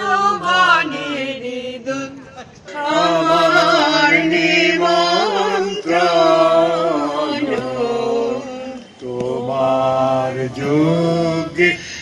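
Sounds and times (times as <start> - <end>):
small group singing slowly: 0.0 - 12.0.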